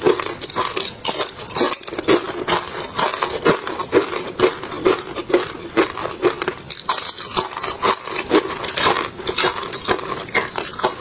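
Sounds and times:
chewing food: 0:00.0 - 0:11.0.

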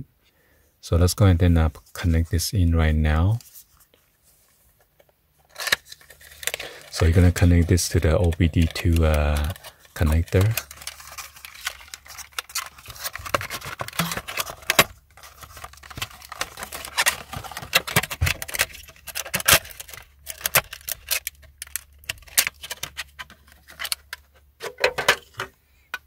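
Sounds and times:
packaging crinkling and clicking: 0:05.4 - 0:26.0.

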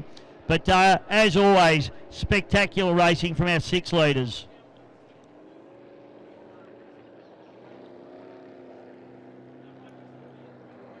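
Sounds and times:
boat engine drone: 0:00.0 - 0:11.0.

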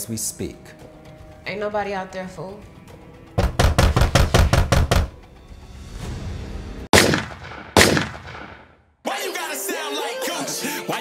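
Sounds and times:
heavy pounding on a door: 0:03.4 - 0:05.2
loud bangs: 0:06.9 - 0:08.7.

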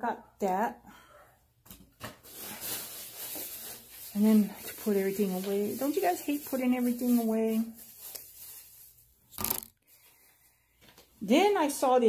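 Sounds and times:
rustling of handled items: 0:01.8 - 0:11.6.

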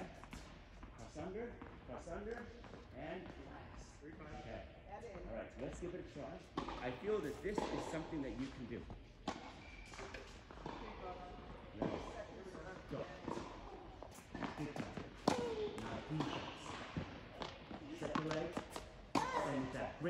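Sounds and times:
tennis ball bouncing on hard court: 0:00.2 - 0:01.8, 0:06.5 - 0:08.6, 0:09.2 - 0:20.0
tennis ball hit by racket: 0:06.6 - 0:08.0, 0:11.8 - 0:19.8.

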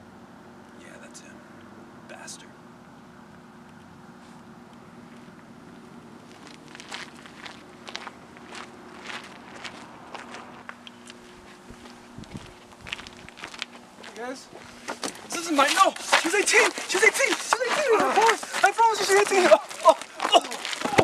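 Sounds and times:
electrical hum: 0:00.0 - 0:21.0
footsteps on pavement: 0:03.6 - 0:21.0.

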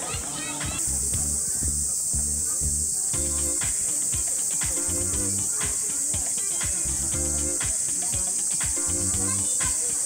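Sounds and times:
cicadas droning: 0:00.0 - 0:10.0
background music with steady beat: 0:00.1 - 0:10.0.

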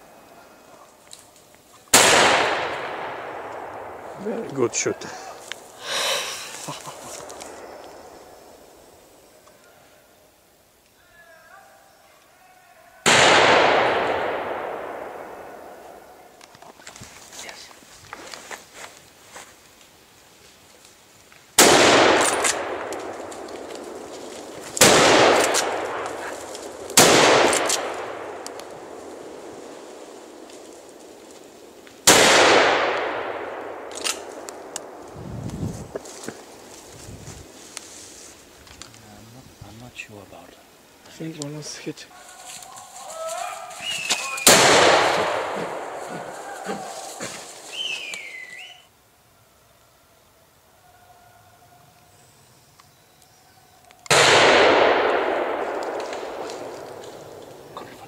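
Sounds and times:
rifle shots echoing: 0:01.9 - 0:05.3, 0:07.1 - 0:08.9, 0:13.0 - 0:16.3, 0:21.6 - 0:35.1, 0:44.2 - 0:47.6, 0:54.1 - 0:57.8.

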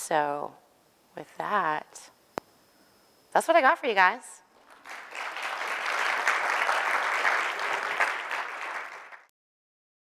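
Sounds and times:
audience applauding: 0:04.6 - 0:09.3.

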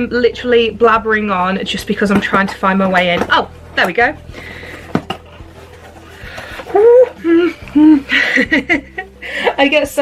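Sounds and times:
woman squealing: 0:06.7 - 0:08.1.

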